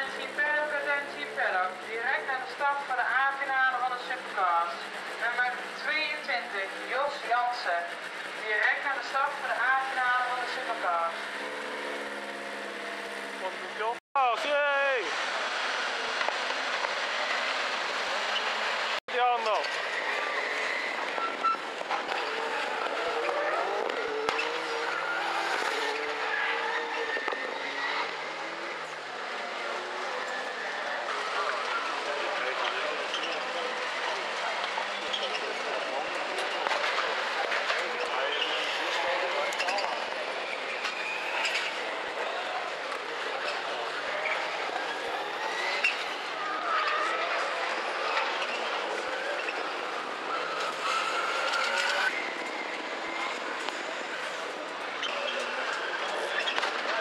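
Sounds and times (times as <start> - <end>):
race car engines revving: 0.0 - 14.0, 15.0 - 57.0.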